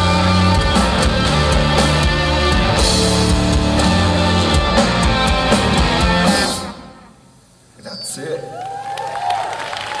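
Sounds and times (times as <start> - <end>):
rock band final chord: 0.0 - 7.0.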